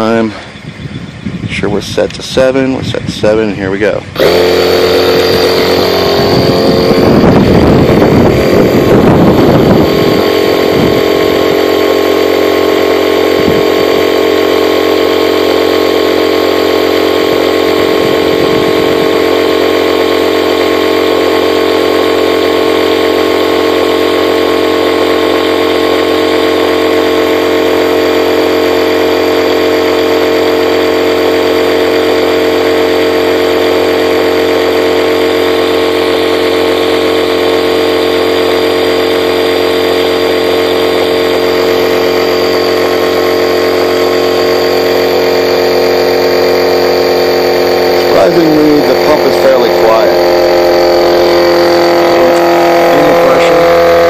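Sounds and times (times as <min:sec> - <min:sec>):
electric air pump motor drone: 0:02.5 - 0:54.0.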